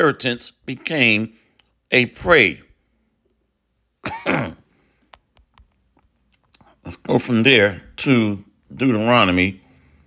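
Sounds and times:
man clearing throat: 4.0 - 4.8.

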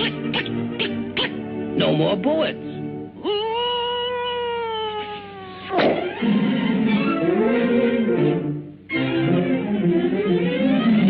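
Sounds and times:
orchestral cartoon music: 0.0 - 3.1, 5.8 - 11.0.

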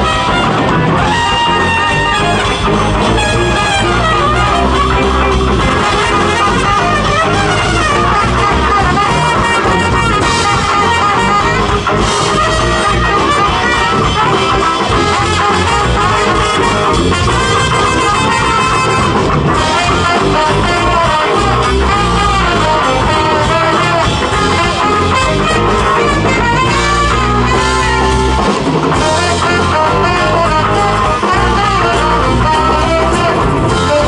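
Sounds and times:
live band playing: 0.0 - 34.0.

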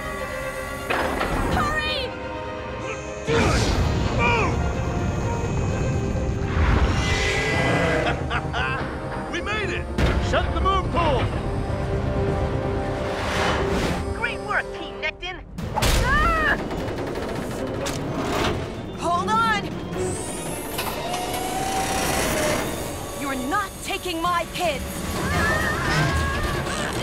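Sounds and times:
dramatic orchestral score: 0.0 - 27.0.

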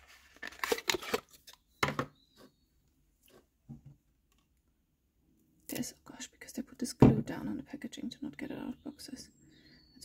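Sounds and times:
packaging rustling: 0.0 - 1.6.

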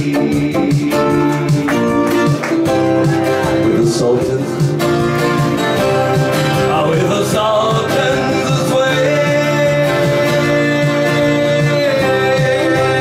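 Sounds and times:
twelve-string acoustic guitar: 0.0 - 13.0.

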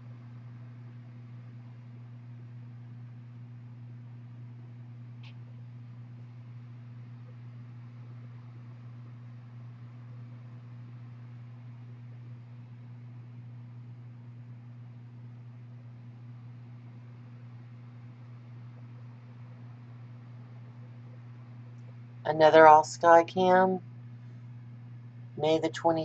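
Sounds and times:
steady low hum: 0.0 - 26.0.

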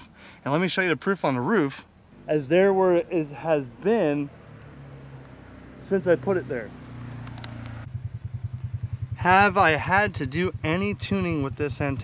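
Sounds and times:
vehicle engine idling: 2.9 - 12.0
sharp handling clicks: 7.2 - 7.8.

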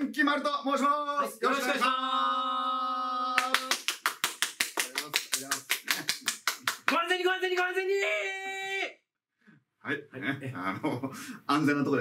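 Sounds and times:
held vocal note: 1.4 - 3.7
quick hand clapping: 3.4 - 7.7.

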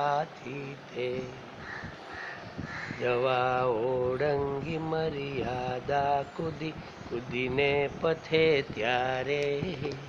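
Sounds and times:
crow cawing: 1.6 - 3.0.

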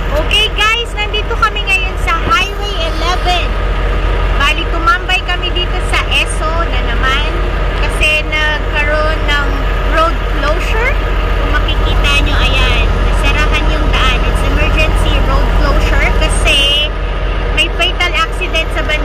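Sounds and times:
indistinct talking: 0.0 - 19.0
truck engine rumbling: 0.0 - 19.0.

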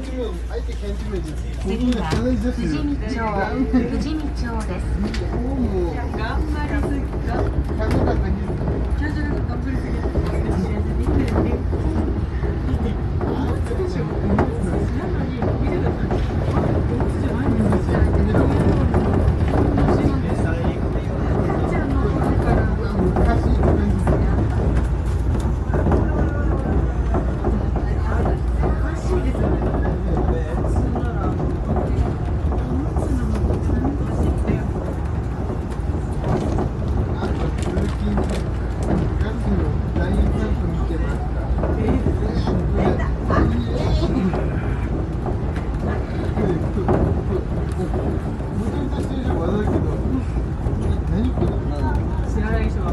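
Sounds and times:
monorail car rumbling: 0.0 - 52.9
people talking: 0.0 - 52.9.

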